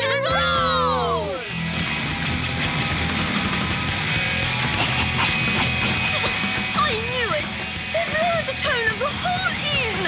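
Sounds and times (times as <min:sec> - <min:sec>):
loud rock music: 0:00.0 - 0:10.0.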